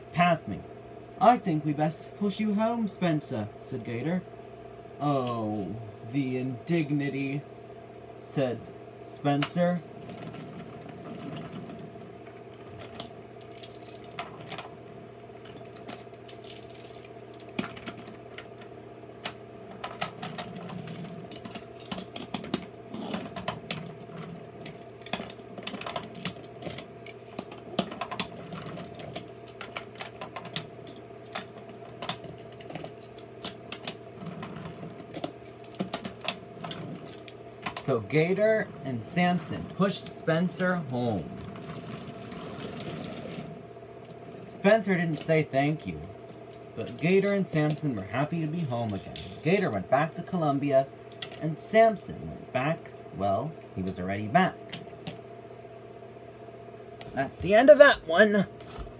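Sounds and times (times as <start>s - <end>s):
low steady hum: 0.0s - 58.9s.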